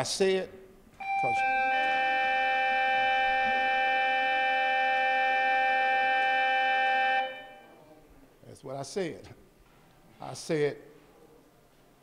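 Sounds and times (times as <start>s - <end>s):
electronic school bell tone: 1.0s - 7.8s.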